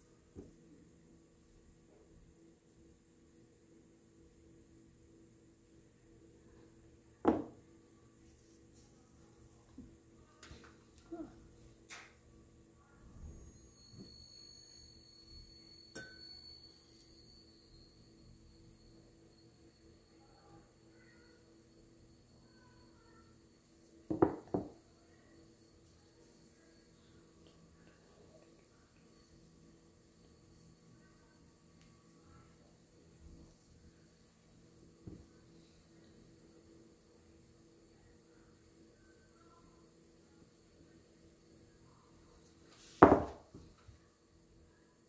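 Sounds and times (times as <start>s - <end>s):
low room hum: 0.0s - 45.0s
pottery tools knocking on worktable: 7.2s - 7.6s, 24.1s - 24.8s, 43.0s - 43.7s.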